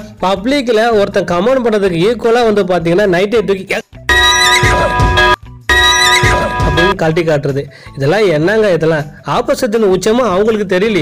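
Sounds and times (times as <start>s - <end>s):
chord of steady tones: 4.1s - 7.0s.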